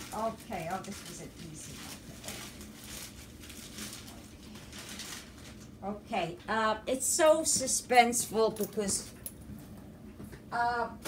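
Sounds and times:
plastic bag crinkling: 0:00.0 - 0:05.9.

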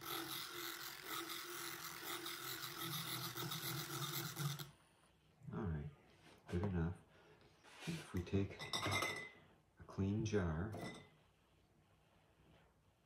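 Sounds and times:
electric mixing wand whirring: 0:00.0 - 0:04.8.

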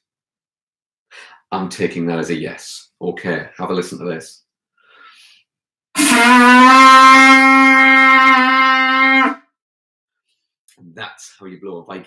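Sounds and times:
animal horn blown: 0:06.0 - 0:09.5.

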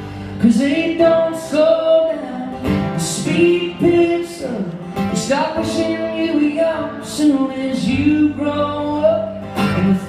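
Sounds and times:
acoustic guitars strummed: 0:00.0 - 0:10.0
person singing: 0:00.0 - 0:10.0.

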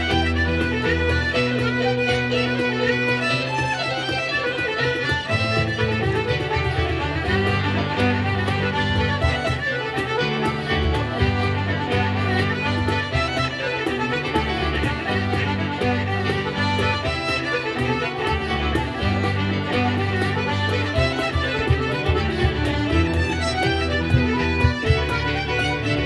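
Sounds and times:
button accordion: 0:00.0 - 0:26.0
cajon steady beat: 0:00.0 - 0:26.0
fiddle playing quick bowed notes: 0:00.0 - 0:26.0.

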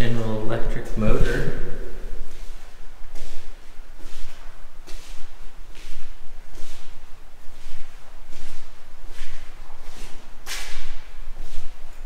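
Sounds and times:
steady low hum: 0:00.0 - 0:12.0
footsteps scuffing on concrete: 0:02.2 - 0:12.0.

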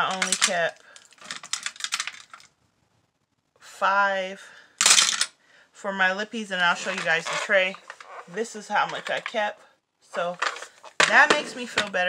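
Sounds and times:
lip pencils clicking and clattering: 0:00.0 - 0:02.5, 0:04.8 - 0:05.3, 0:06.6 - 0:09.5, 0:10.2 - 0:12.0.

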